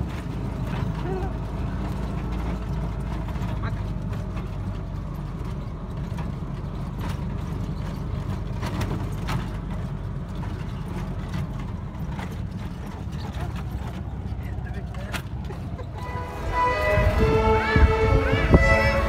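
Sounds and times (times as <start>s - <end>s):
vehicle body knocks and rattles: 0.0s - 15.9s
small engine rumbling: 0.0s - 19.0s.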